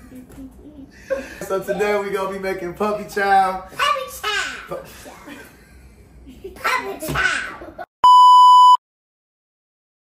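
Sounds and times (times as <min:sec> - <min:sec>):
test tone beep: 0:08.0 - 0:08.8.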